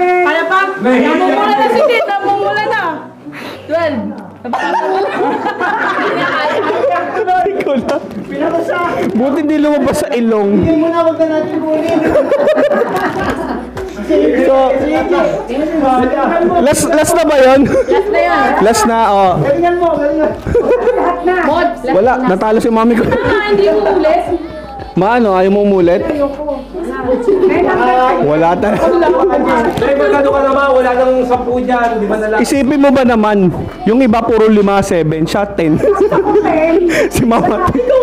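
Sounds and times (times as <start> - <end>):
loud group chatter: 0.0 - 38.0
man talking close up: 25.0 - 26.6, 27.5 - 35.9.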